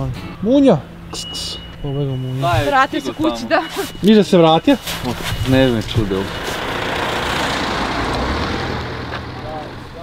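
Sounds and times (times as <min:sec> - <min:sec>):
van driving past: 0:05.0 - 0:10.0.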